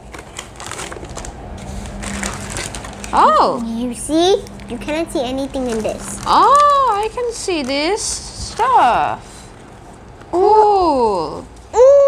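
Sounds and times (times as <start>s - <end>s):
plastic bag crinkling: 0.0s - 10.2s.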